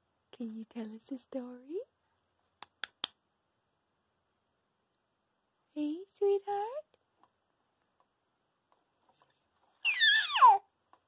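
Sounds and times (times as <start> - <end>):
baby squealing: 9.8 - 10.7.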